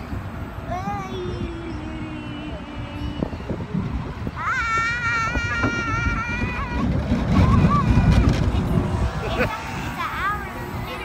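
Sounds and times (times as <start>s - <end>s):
faint voices: 0.0s - 11.0s
low rumbling noise: 0.0s - 11.0s
wind buffeting microphone: 0.0s - 11.0s.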